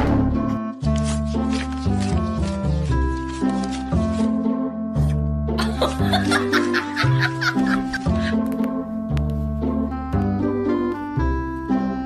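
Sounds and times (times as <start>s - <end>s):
background music with held notes: 0.0s - 12.0s
person laughing: 5.6s - 8.5s.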